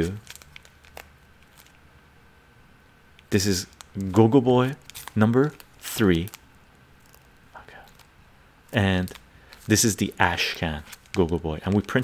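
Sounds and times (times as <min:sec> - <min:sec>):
plastic sleeve crinkling: 0:00.0 - 0:01.8, 0:03.2 - 0:12.0.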